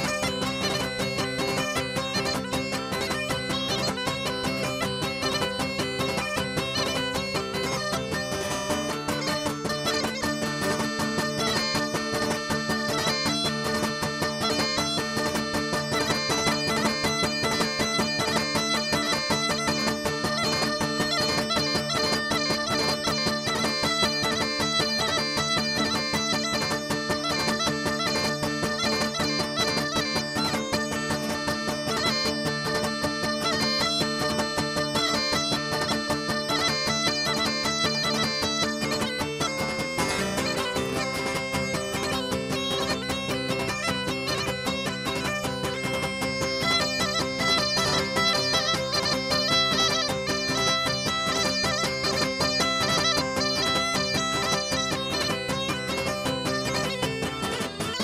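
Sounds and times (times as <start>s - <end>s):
bagpipe playing a dance tune: 0.0s - 58.0s
strummed lute mandolin and guitar: 0.0s - 58.0s.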